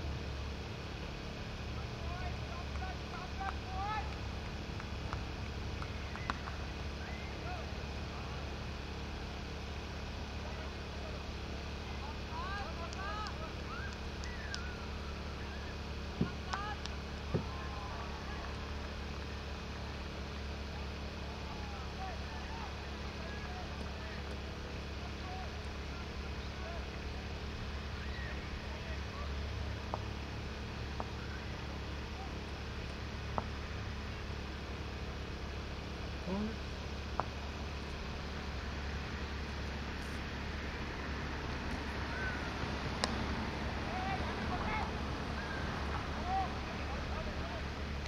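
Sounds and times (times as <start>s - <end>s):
faint distant calls: 0.0s - 48.0s
steady low rumble: 0.0s - 48.0s.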